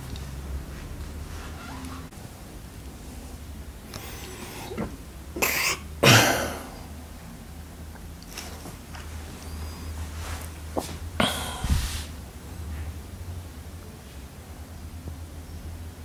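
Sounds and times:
person coughing: 5.4 - 6.8, 11.2 - 11.8.

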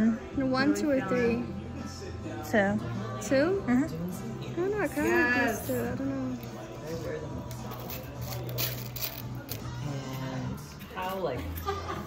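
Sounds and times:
quiet voices: 0.0 - 12.0
metal charms clicking: 7.4 - 9.8.

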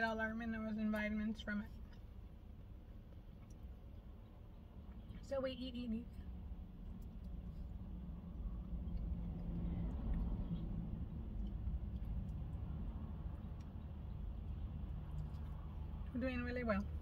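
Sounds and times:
faint hum: 0.0 - 17.0
person chewing: 6.3 - 16.1.

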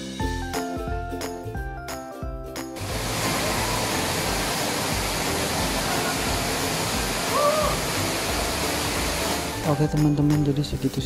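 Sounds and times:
waterfall rushing: 2.8 - 9.7.

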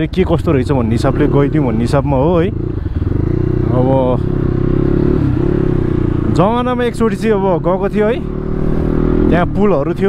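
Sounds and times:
man talking: 0.0 - 2.6, 3.7 - 4.3, 6.2 - 8.3, 9.2 - 10.0
motorcycle engine running: 0.4 - 10.0.

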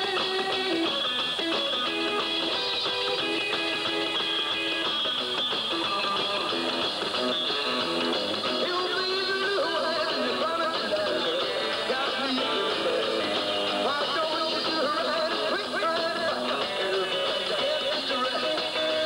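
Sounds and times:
guitar: 0.0 - 19.0
rock and roll band playing live: 0.0 - 19.0.

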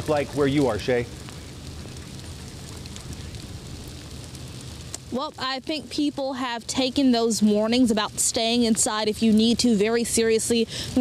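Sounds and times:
sleet and freezing rain falling: 0.0 - 11.0.

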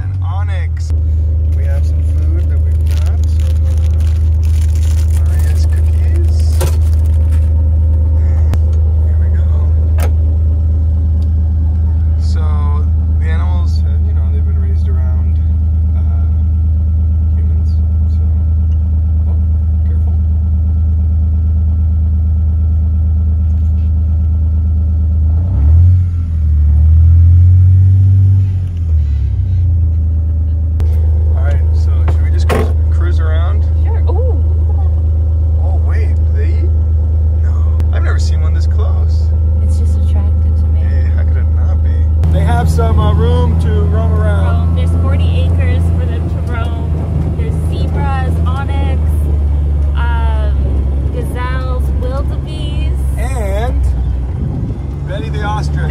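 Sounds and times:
vehicle engine humming: 0.0 - 55.9.

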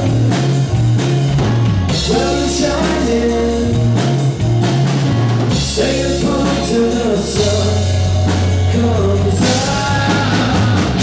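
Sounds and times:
man singing: 0.0 - 0.7, 1.9 - 4.4, 5.5 - 11.0
drum kit beating: 0.0 - 11.0
electric guitar: 0.0 - 11.0.

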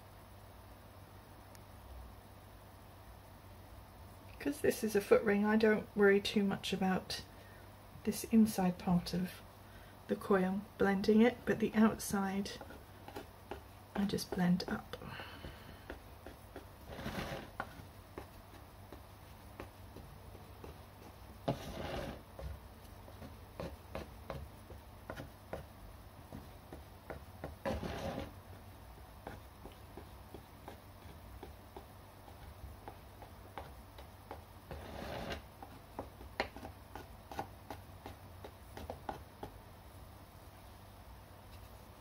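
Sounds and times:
tool scraping and tapping clay: 11.0 - 39.6
rubbing sounds: 15.7 - 39.6.

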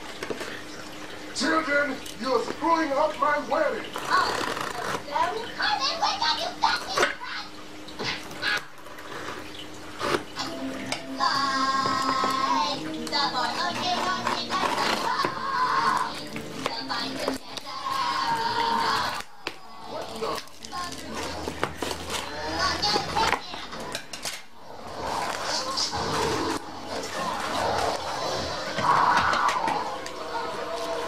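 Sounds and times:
music from television: 10.3 - 31.0
bubble wrap pressed: 13.4 - 23.4.

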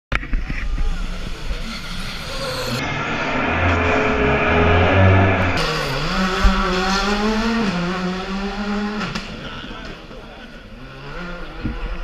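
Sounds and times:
voices: 0.2 - 3.4, 9.2 - 12.0
rally car engine approaching: 0.2 - 12.0.

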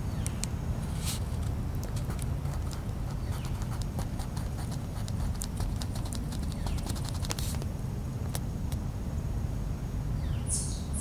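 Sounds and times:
pencil scratching on paper: 2.0 - 7.6.

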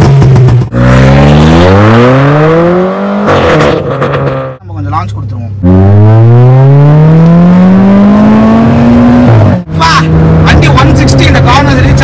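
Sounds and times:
car engine accelerating hard: 0.0 - 4.6, 5.6 - 12.0.

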